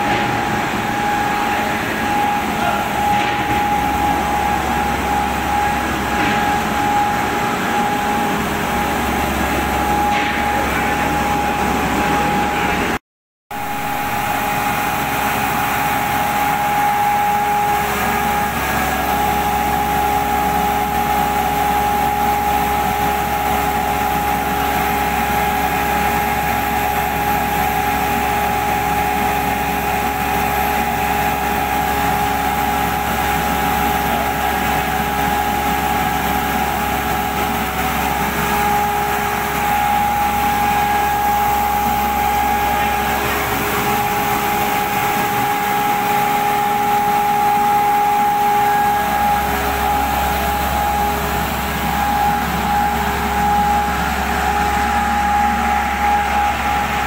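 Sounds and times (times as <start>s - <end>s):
machinery deep hum: 0.0s - 57.0s
machinery high-pitched whine: 0.0s - 57.0s.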